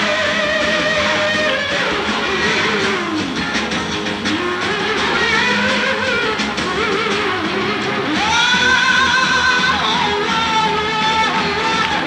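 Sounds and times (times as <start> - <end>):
electric guitar notes bending: 0.0 - 12.0
live rock band playing: 0.0 - 12.0.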